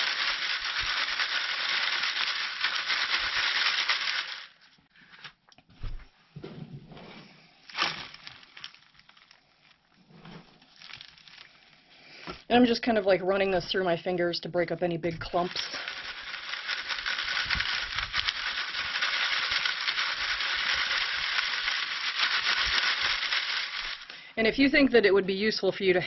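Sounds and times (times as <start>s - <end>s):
compost rustling: 0.0s - 4.5s, 7.0s - 12.2s, 15.2s - 24.4s
soil hissing through wire sieve: 0.0s - 4.6s, 7.2s - 12.4s, 15.2s - 24.4s.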